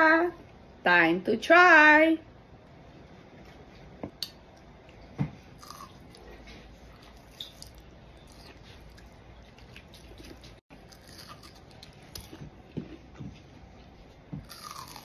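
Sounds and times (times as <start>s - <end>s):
biting and chewing: 5.6s - 13.3s, 14.4s - 15.0s.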